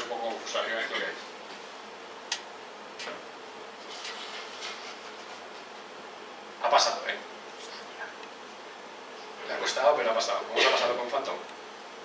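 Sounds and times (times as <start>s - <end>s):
buzzing room hum: 0.0s - 12.0s.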